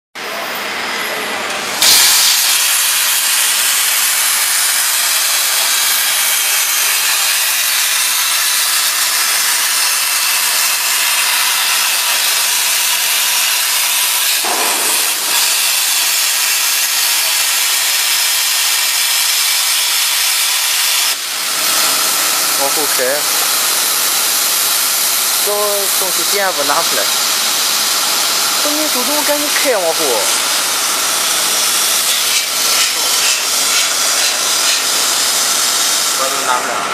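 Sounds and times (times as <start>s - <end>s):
plasma cutter arc hissing: 0.4s - 36.7s.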